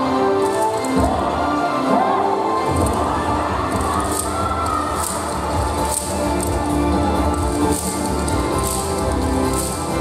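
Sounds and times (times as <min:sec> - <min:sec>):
loud dance music with steady beat: 0:00.0 - 0:10.0
wooden clappers clacking: 0:00.4 - 0:01.0, 0:03.7 - 0:10.0.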